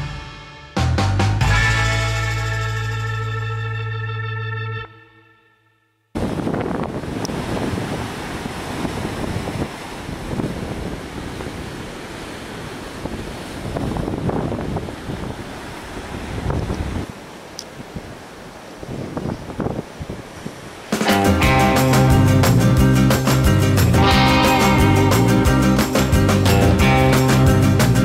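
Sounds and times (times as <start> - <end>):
wind buffeting microphone: 6.2 - 20.9
ocean surf breaking: 6.2 - 28.0.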